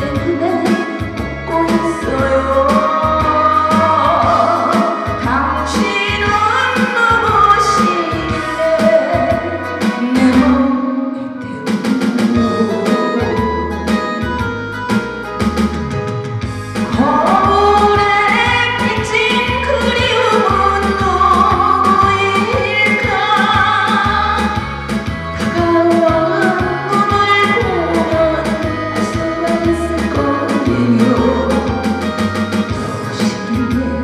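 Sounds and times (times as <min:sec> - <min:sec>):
backing track with drum beat: 0:00.0 - 0:10.7, 0:11.5 - 0:34.0
woman singing into microphone: 0:00.0 - 0:14.5, 0:16.8 - 0:34.0.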